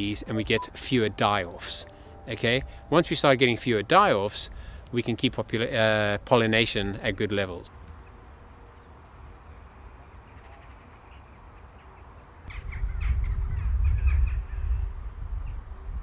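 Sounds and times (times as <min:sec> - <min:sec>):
crows cawing: 0:10.4 - 0:11.0.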